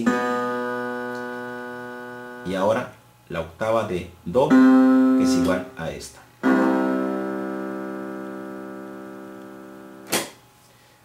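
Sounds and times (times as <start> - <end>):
electronic keyboard piano notes: 0.0 - 2.8, 4.3 - 10.1.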